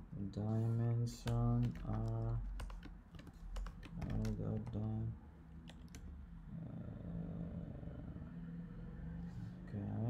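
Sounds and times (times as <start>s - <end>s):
keyboard keystrokes: 1.2s - 5.0s, 5.7s - 6.1s.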